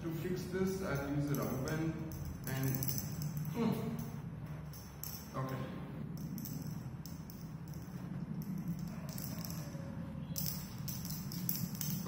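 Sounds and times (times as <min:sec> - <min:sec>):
steady low room hum: 0:00.0 - 0:12.0.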